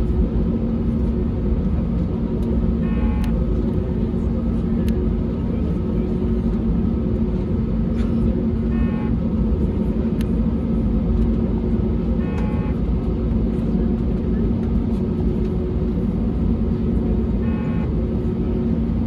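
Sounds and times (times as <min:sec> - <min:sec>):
aircraft cabin rumble: 0:00.0 - 0:19.0
jet engine hum: 0:00.0 - 0:19.0.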